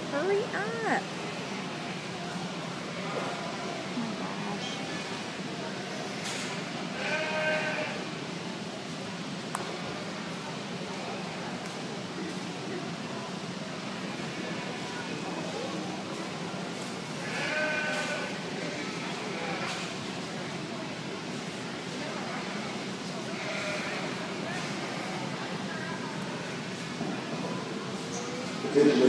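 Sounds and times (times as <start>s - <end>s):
crowd murmur: 0.0s - 29.0s
lambs bleating: 7.0s - 8.0s, 17.2s - 19.8s, 23.3s - 24.1s.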